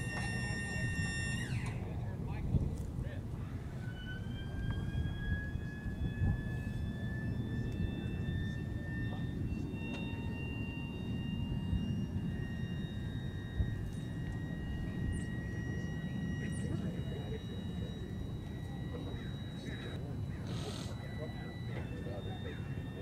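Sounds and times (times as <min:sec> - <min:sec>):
engine starter whine: 0:00.0 - 0:02.1, 0:03.4 - 0:23.0
steady low rumble: 0:00.0 - 0:23.0.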